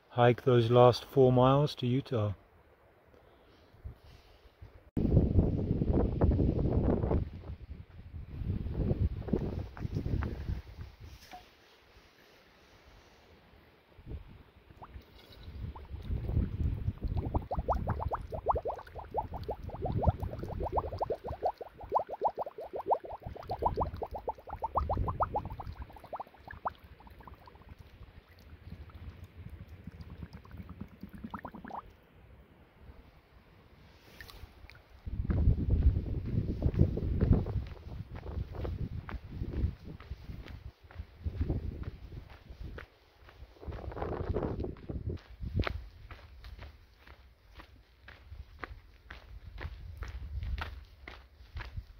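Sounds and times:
bottle gurgling underwater: 14.7 - 31.9.

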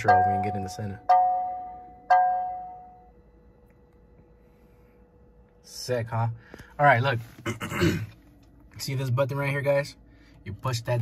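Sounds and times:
bell-like cabin chime: 0.0 - 3.2.

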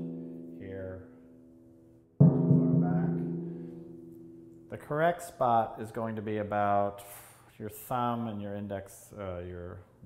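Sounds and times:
timpani struck with felt mallet: 2.2 - 4.5.

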